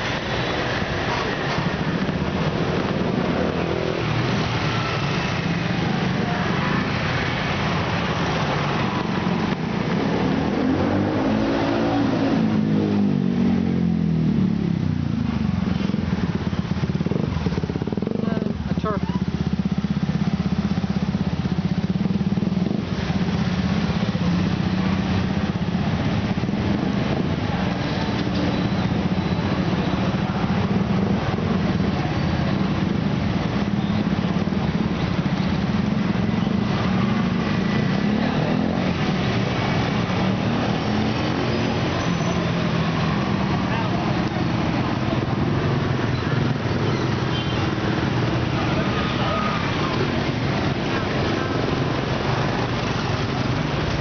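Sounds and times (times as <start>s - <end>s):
motorbike engines running: 0.0s - 54.0s.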